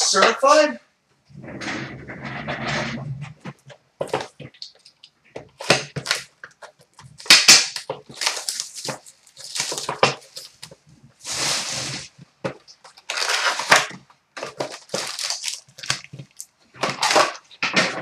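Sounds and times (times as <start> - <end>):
plastic wrap and cardboard tearing: 2.1 - 18.0
foil packs rustling: 5.6 - 17.6.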